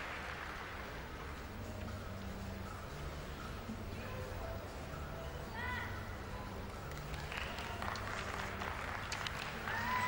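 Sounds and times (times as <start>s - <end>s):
crowd applauding: 0.0s - 1.0s, 7.1s - 10.0s.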